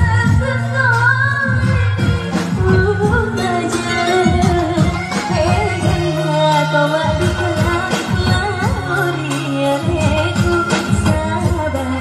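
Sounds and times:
amplified band music with drums: 0:00.0 - 0:12.0
woman singing into microphone: 0:00.0 - 0:12.0.

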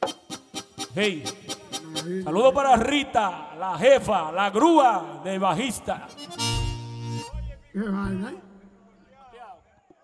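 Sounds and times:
accordion chord with bass notes: 0:00.0 - 0:02.3, 0:05.9 - 0:08.4
person speaking: 0:07.3 - 0:08.8.

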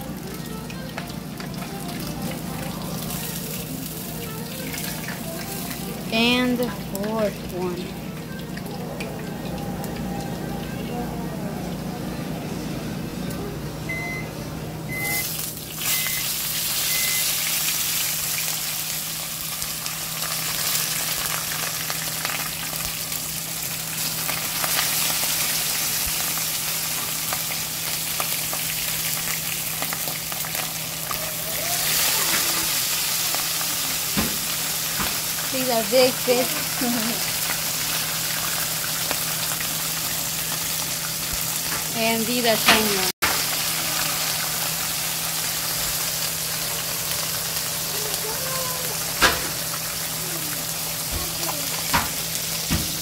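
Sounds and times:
fish sizzling in oil: 0:00.0 - 0:09.3, 0:15.0 - 0:53.0
short high beeps: 0:14.9 - 0:16.3.

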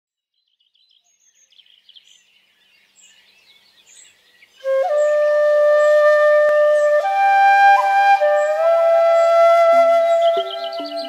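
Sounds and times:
birds chirping: 0:00.4 - 0:11.0.

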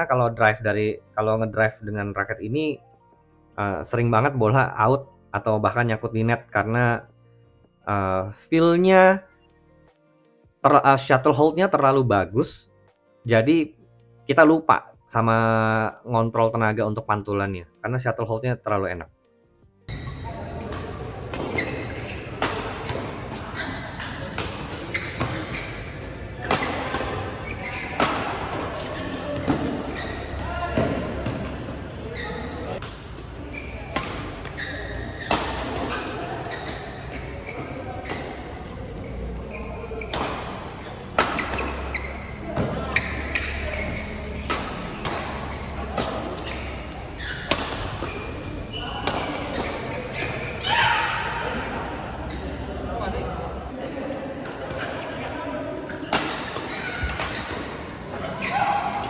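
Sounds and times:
players' voices: 0:19.9 - 0:59.0
racket striking shuttlecock: 0:20.0 - 0:31.7, 0:32.8 - 0:38.6, 0:40.0 - 0:51.3, 0:56.1 - 0:59.0.

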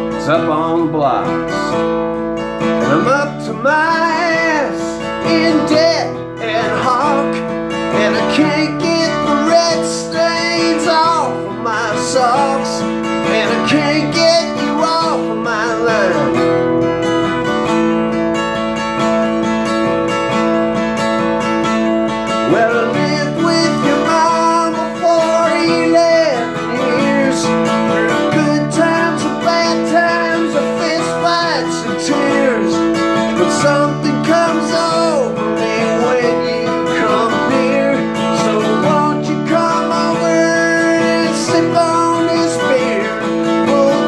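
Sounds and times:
person singing: 0:00.0 - 0:01.9, 0:02.6 - 0:17.2, 0:22.3 - 0:44.0
acoustic guitar strumming: 0:00.0 - 0:44.0.

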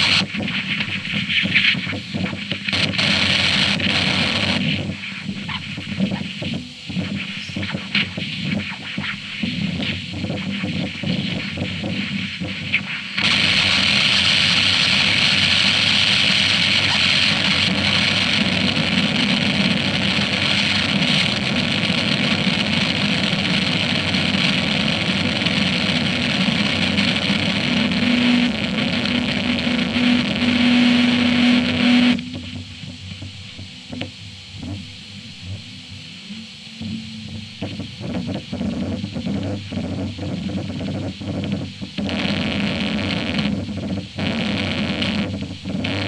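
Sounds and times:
choppy crackling noise: 0:00.0 - 0:46.0
dense hissing noise block: 0:00.0 - 0:46.0
low hum-like tone: 0:27.8 - 0:41.9.

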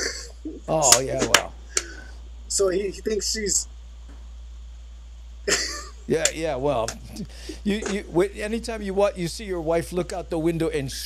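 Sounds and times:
man laughing: 0:00.0 - 0:02.1, 0:05.5 - 0:08.6
low steady hum: 0:00.0 - 0:11.0.

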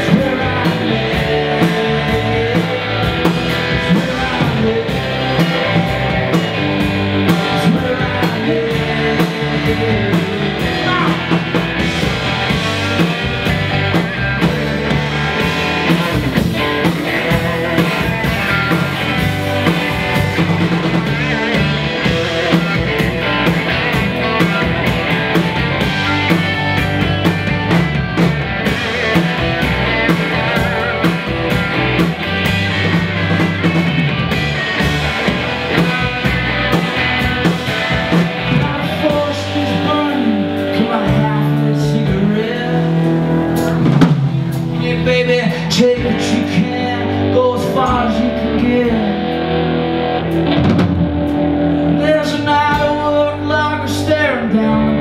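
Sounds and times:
bass guitar: 0:00.0 - 0:55.0
drum kit: 0:00.0 - 0:55.0
electric guitars: 0:00.0 - 0:55.0.

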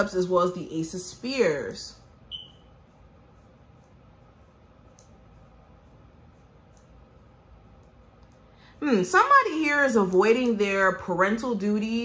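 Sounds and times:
high-pitched chirp: 0:02.3 - 0:02.7.

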